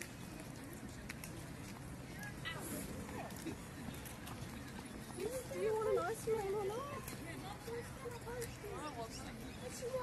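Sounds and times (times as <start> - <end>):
people talking nearby: 0.0 - 10.0.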